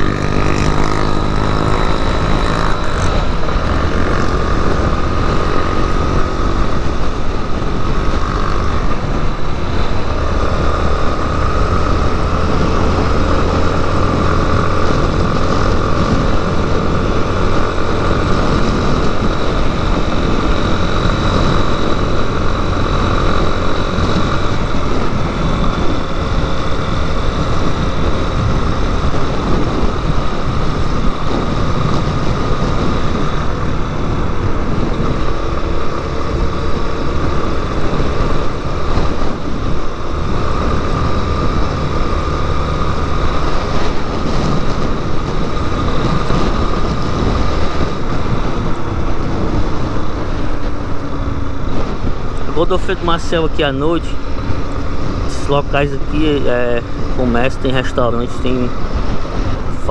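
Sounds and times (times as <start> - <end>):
motorcycle engine running: 0.0 - 59.9
wind rushing: 0.0 - 59.9.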